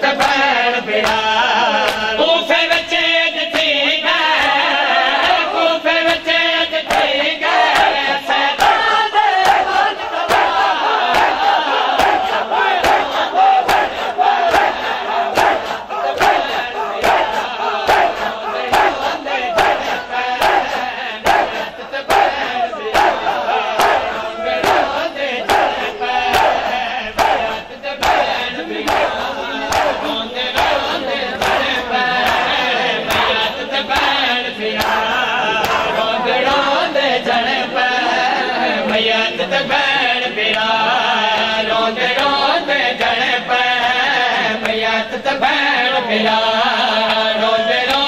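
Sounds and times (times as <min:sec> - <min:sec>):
men chanting in unison: 0:00.0 - 0:48.0
hands slapping chests: 0:06.1 - 0:08.0, 0:09.4 - 0:35.9.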